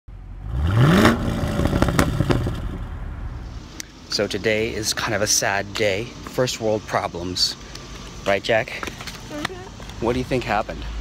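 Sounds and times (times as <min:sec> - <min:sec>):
car engine revving: 0:00.2 - 0:04.8.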